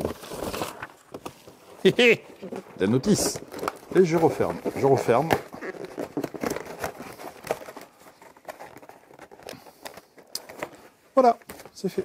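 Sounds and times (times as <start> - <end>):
cardboard box lid rustling: 0.0 - 9.5.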